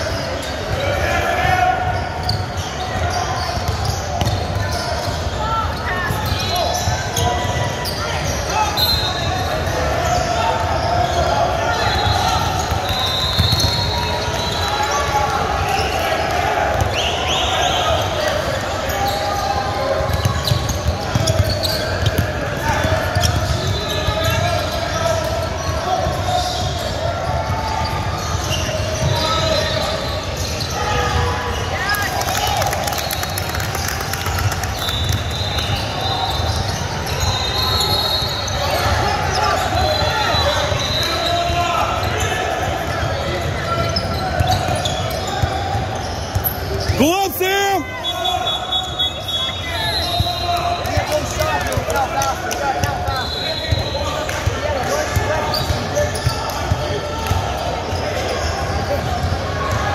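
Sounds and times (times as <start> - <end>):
sneakers squeaking on hardwood: 2.0 - 9.3, 11.9 - 15.0, 20.0 - 31.2, 34.9 - 47.0, 55.0 - 59.8
basketball dribbling: 20.1 - 24.4.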